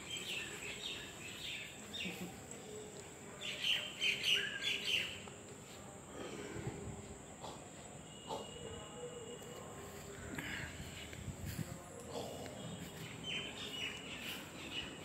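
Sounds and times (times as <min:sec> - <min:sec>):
birds chirping: 0:10.4 - 0:15.0.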